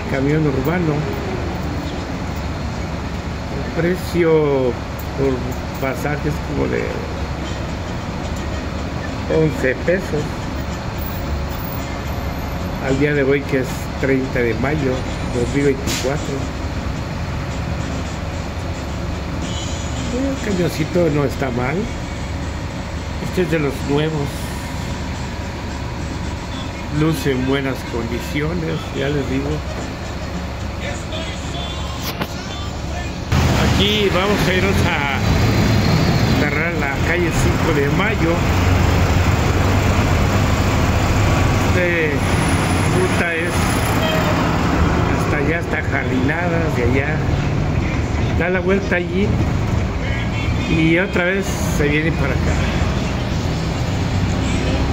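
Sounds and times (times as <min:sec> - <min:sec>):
bus engine rumble: 0:00.0 - 0:54.9
road noise: 0:00.0 - 0:54.9
voices: 0:23.1 - 0:39.8.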